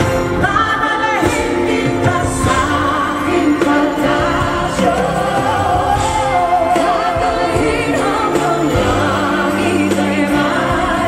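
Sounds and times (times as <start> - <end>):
band accompaniment: 0.0 - 11.0
women singing a duet: 0.1 - 11.0.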